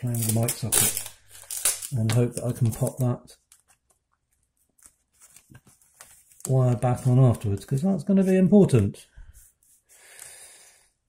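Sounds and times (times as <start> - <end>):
tape rustling and ticking: 0.0 - 8.3.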